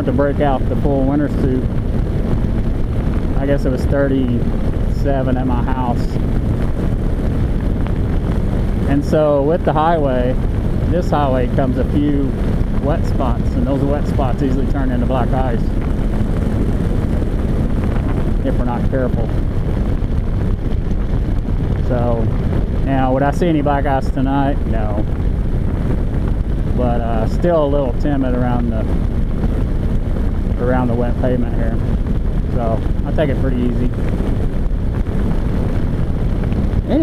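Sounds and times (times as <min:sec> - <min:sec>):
motorcycle engine running: 0:00.0 - 0:37.0
wind rushing over microphone: 0:00.0 - 0:37.0.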